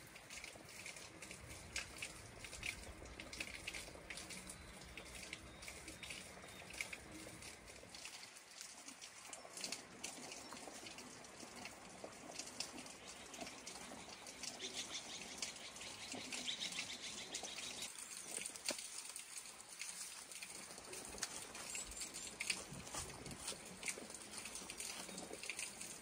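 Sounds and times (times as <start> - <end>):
small birds chirping: 4.0 - 7.6, 12.6 - 18.6, 20.8 - 26.0.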